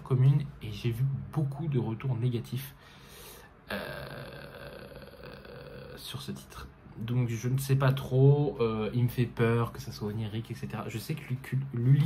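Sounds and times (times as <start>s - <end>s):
man speaking: 0.0s - 2.8s, 3.7s - 12.0s.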